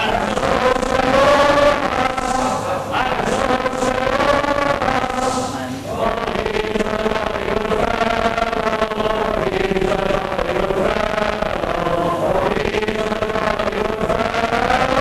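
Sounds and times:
crowd of men singing in unison: 0:00.0 - 0:15.0.

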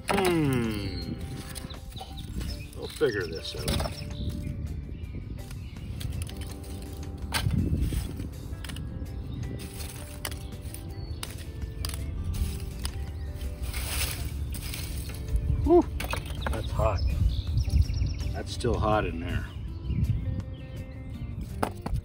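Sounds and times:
charcoal lumps clinking and rattling: 0:00.0 - 0:04.5, 0:05.4 - 0:17.0
background music: 0:00.0 - 0:22.0.

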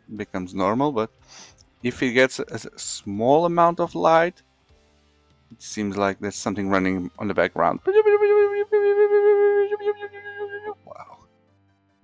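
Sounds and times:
man humming electronic tone: 0:07.9 - 0:11.2.

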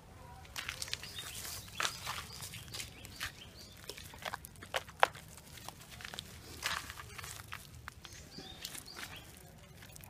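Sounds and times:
footsteps on dirt and leaves: 0:00.5 - 0:10.0.

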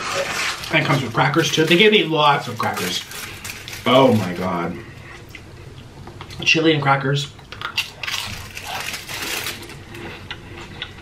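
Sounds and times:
plastic wrapper tearing and crinkling: 0:00.0 - 0:04.6, 0:07.6 - 0:10.0.

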